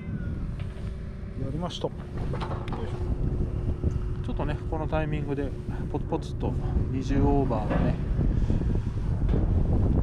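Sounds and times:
wind buffeting microphone: 0.0 - 10.0.

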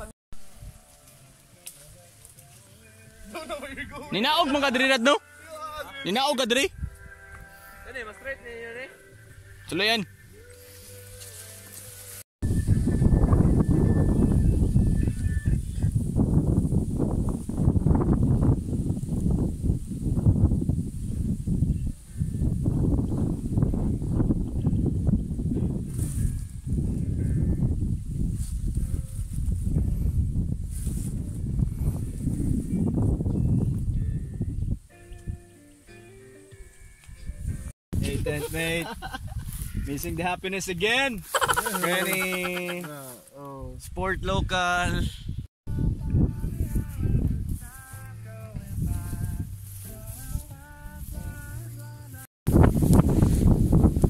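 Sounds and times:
wind buffeting microphone: 12.4 - 35.4, 37.2 - 40.7, 43.6 - 51.6, 52.5 - 54.0.

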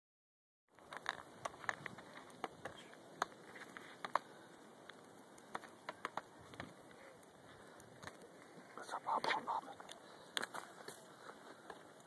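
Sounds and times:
campfire crackling: 0.7 - 12.0.

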